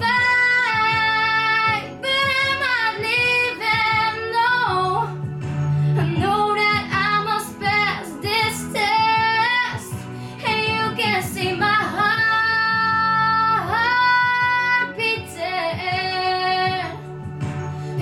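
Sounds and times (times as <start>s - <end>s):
backing music: 0.0s - 18.0s
girl singing a ballad: 0.0s - 18.0s.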